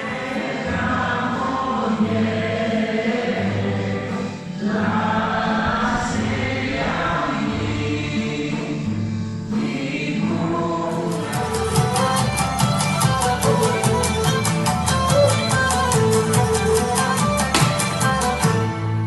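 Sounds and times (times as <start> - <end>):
group of voices singing: 0.0 - 12.6
steady bass: 3.6 - 13.5
music with ticking beat: 11.1 - 18.7.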